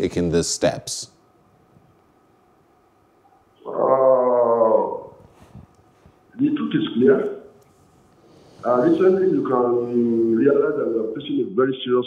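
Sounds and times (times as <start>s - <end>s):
man saying uhh over telephone: 8.6s - 11.2s.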